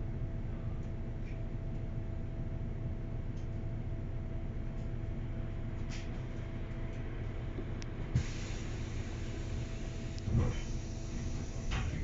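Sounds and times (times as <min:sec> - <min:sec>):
bus engine and road drone: 0:00.0 - 0:12.0
bus jolt: 0:08.1 - 0:12.0
hiss: 0:08.2 - 0:12.0.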